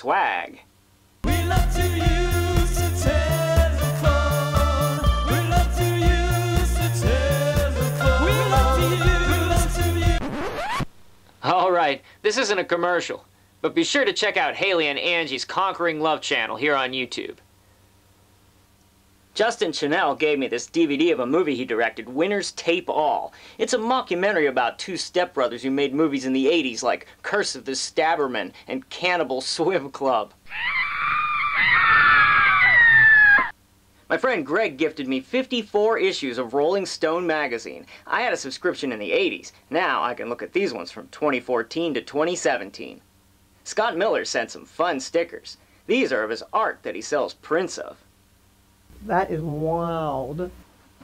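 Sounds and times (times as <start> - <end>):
jingle: 1.3 - 10.1
rising scratchy sweep: 10.0 - 11.1
short voiced sound: 30.5 - 31.8
person screaming: 30.5 - 33.5.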